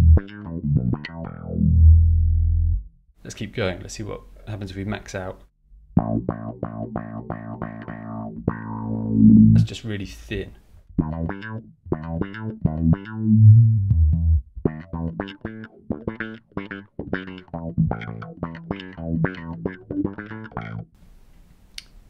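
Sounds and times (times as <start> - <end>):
bass guitar plucked notes: 0.0 - 3.1, 5.7 - 9.8, 10.9 - 21.0.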